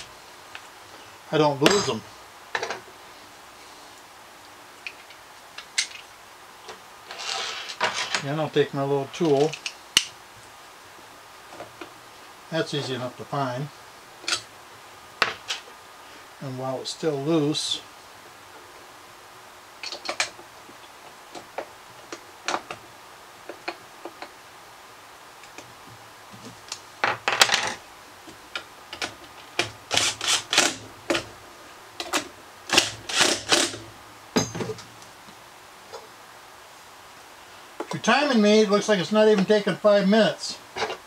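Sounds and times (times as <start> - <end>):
drill driving screws: 29.9 - 30.8, 32.7 - 33.8.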